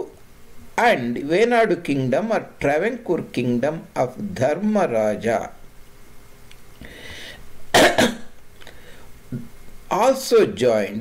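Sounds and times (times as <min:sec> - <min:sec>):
quick breath in: 0:06.8 - 0:07.5, 0:08.6 - 0:09.2
man coughing: 0:07.7 - 0:08.3.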